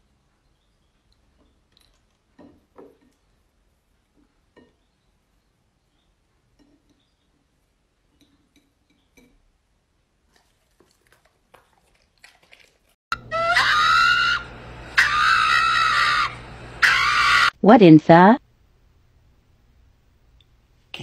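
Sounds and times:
dog giving high-pitched cries: 13.2 - 14.4, 15.0 - 17.6.

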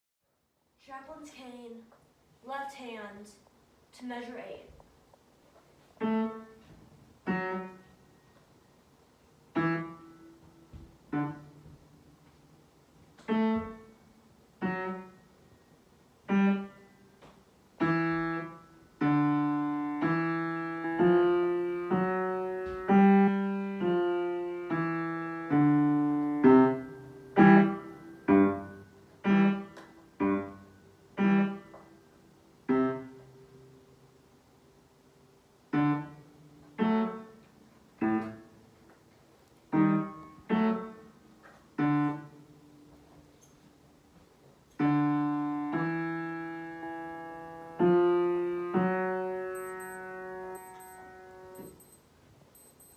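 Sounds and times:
low piano notes and chords: 6.0 - 8.6, 9.3 - 34.1, 35.6 - 52.0.

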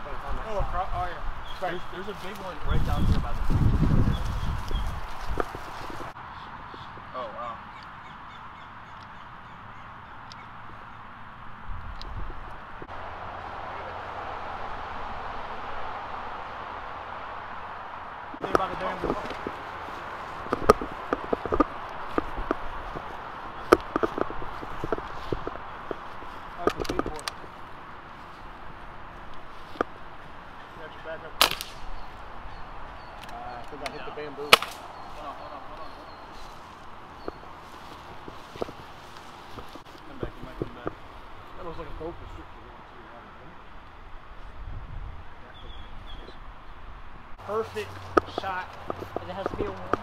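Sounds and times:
air rifle shot: 31.4 - 32.0, 34.5 - 34.9.

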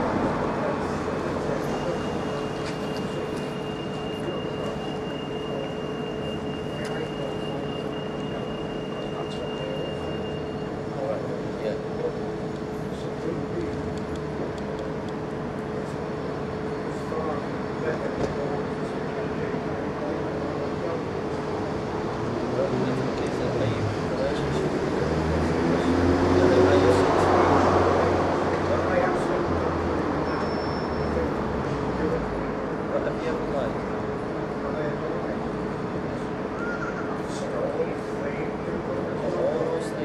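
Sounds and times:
droning street hum: 0.0 - 40.0
high-pitched whine: 0.9 - 12.3.

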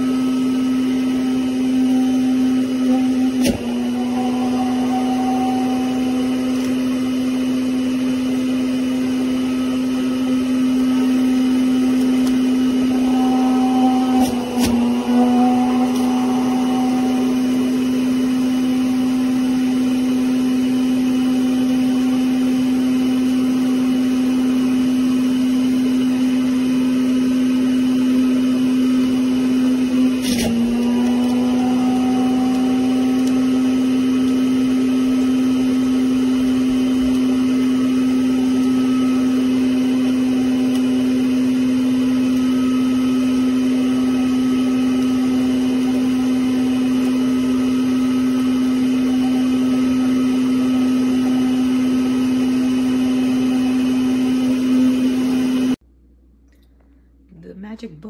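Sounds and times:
juicer motor hum: 0.0 - 55.8.

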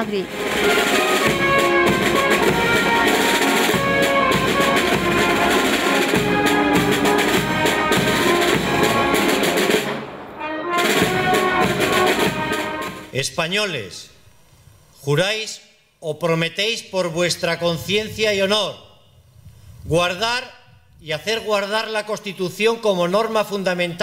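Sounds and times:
military band with brass and drums: 0.0 - 13.2.

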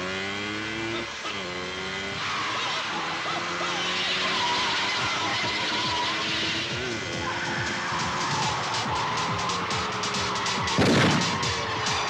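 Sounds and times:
background music: 0.0 - 12.0
car engine: 0.0 - 12.0
car tyres squealing: 0.0 - 12.0.

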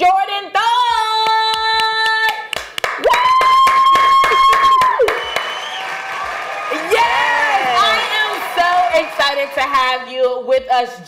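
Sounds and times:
hand claps: 0.9 - 10.0
woman's high excited cry: 3.1 - 5.1.

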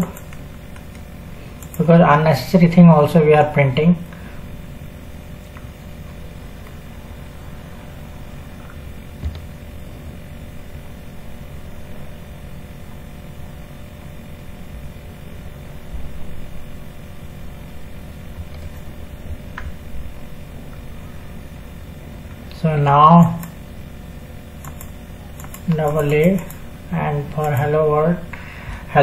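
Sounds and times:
electrical hum: 0.0 - 29.0.

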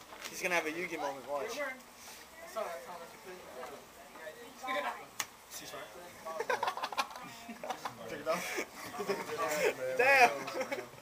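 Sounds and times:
people talking indistinctly: 0.3 - 11.0.

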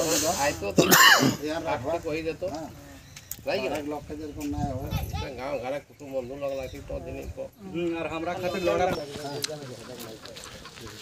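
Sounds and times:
people talking while walking: 0.0 - 11.0.

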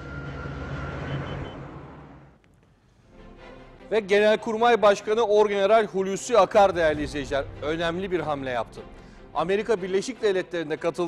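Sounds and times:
low engine drone: 0.0 - 2.4.

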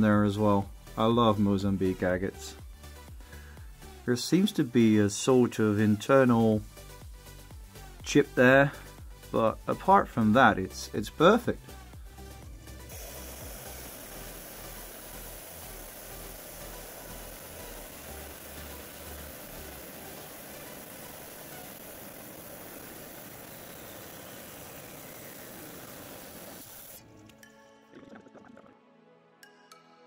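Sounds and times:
background music: 0.0 - 30.0.

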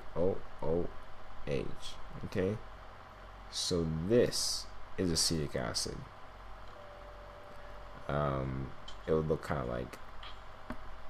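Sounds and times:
faint background hiss: 0.0 - 11.0
low hum: 0.0 - 11.0.

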